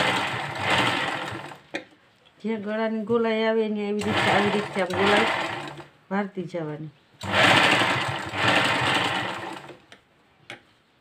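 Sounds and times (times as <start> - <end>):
sewing machine stitching: 0.0 - 1.7, 4.0 - 5.9, 7.2 - 9.8.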